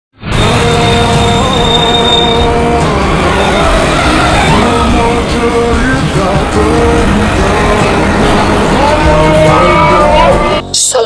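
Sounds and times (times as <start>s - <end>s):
music playing: 0.2s - 11.0s.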